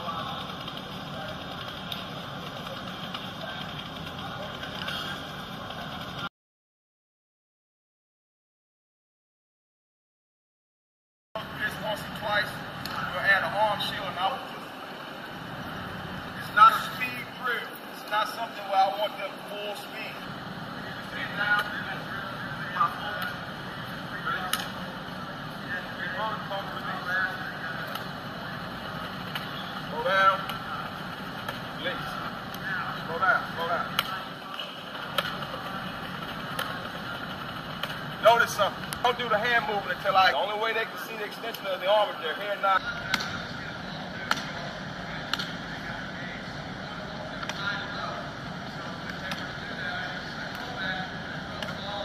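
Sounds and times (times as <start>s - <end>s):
muffled distant voices: 0.0s - 6.3s, 11.4s - 52.0s
steady hum and hiss: 0.0s - 6.3s, 11.4s - 52.0s.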